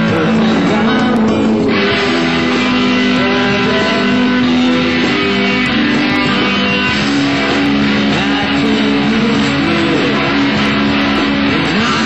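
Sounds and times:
electric guitar sustained notes: 0.0s - 12.0s.

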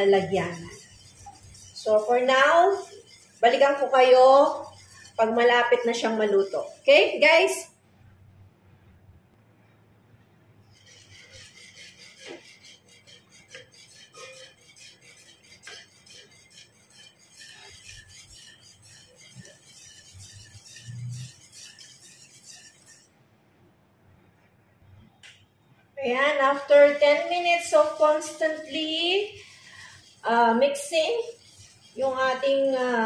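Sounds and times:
whisk scraping metal pot: 0.0s - 7.8s, 10.6s - 23.2s, 26.0s - 33.0s.

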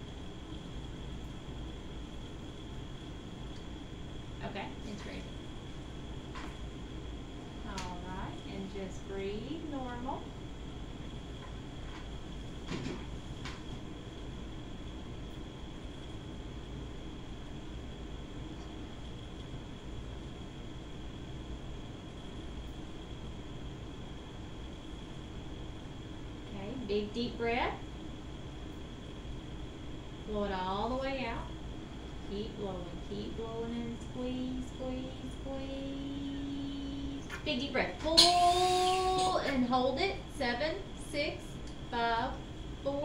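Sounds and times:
steady hum: 0.0s - 43.0s.

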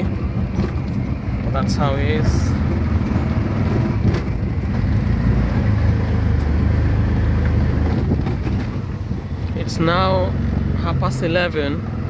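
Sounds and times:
auto-rickshaw engine running: 0.0s - 12.0s
road noise: 0.0s - 12.0s
knocks from bumpy road: 7.4s - 9.3s.

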